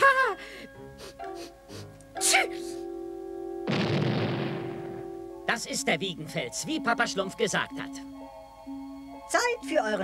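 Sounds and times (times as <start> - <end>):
background music: 0.0 - 10.0
cartoon sneeze: 2.2 - 2.8
cartoon explosion: 3.7 - 5.0.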